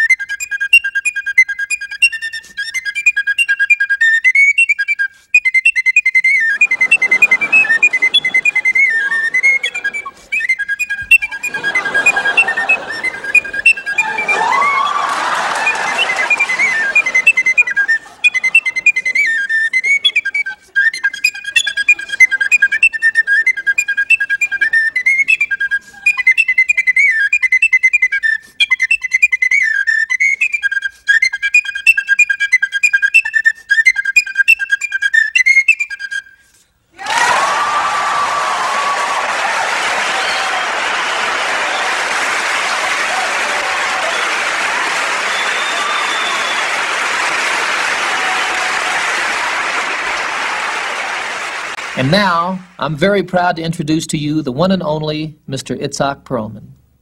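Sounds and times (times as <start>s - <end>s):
tin whistle melody: 0.0s - 39.2s, 39.8s - 50.6s
audience whistling: 0.0s - 53.2s
audience applauding: 6.6s - 10.2s, 11.3s - 20.0s, 37.0s - 53.1s.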